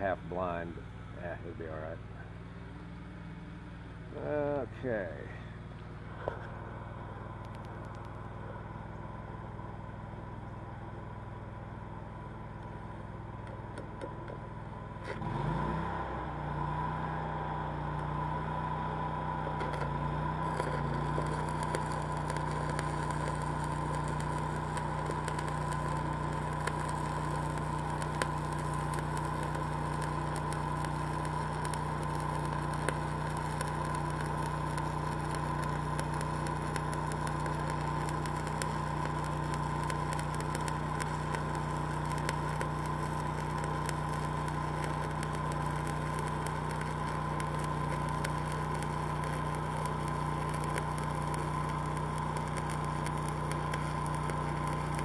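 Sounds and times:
welder engine running: 0:00.0 - 0:55.0
welding arc crackling: 0:03.9 - 0:09.9, 0:12.6 - 0:55.0.

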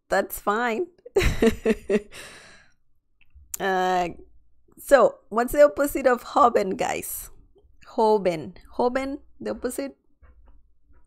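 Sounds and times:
woman's breathy laugh: 0:01.2 - 0:02.6.

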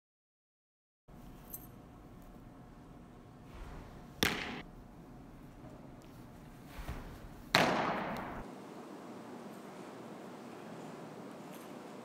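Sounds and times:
softball smacking into leather mitt: 0:04.2 - 0:04.6, 0:07.5 - 0:08.4.

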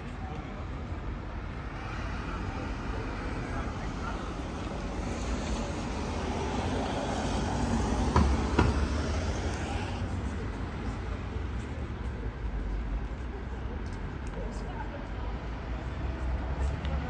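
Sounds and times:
passing vehicles rumble: 0:00.0 - 0:17.0.

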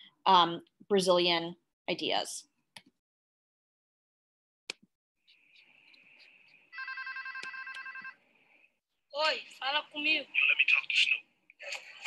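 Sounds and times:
telephone ringing: 0:06.7 - 0:08.2.

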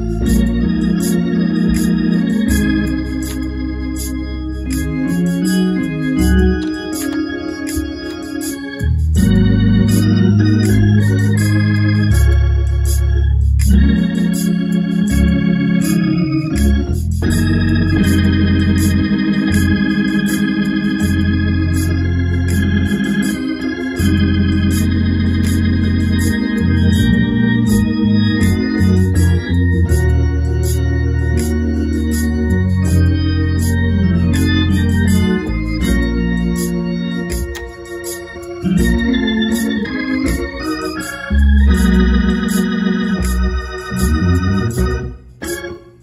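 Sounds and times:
deep bass line: 0:00.0 - 0:45.4
organ chords: 0:00.0 - 0:46.0
ticking beat: 0:00.0 - 0:46.0.

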